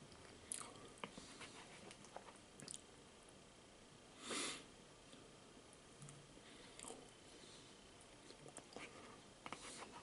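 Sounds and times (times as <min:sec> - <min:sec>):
person chewing food: 0:00.1 - 0:01.2, 0:06.7 - 0:07.1.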